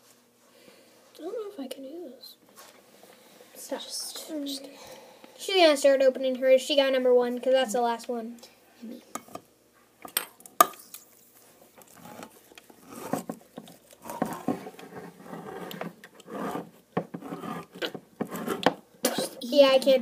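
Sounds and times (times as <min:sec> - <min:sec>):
can opener scraping: 0:11.8 - 0:18.8.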